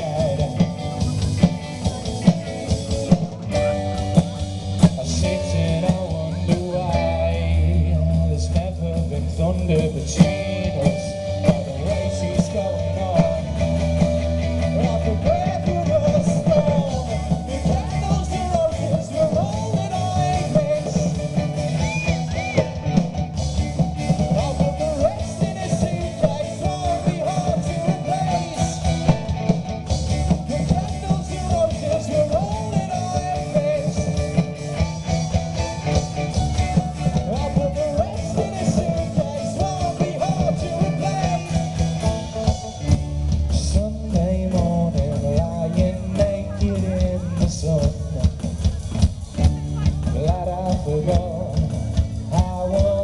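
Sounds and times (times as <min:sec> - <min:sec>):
person singing: 0:00.0 - 0:42.6, 0:43.4 - 0:53.0
bent high guitar notes: 0:00.0 - 0:52.9
bending melody line: 0:00.0 - 0:53.0
live rock band playing: 0:00.0 - 0:53.0.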